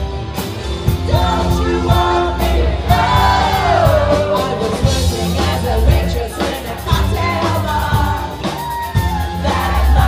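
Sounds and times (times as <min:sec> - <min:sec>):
bass: 0:00.0 - 0:10.0
steady drum beat: 0:00.0 - 0:10.0.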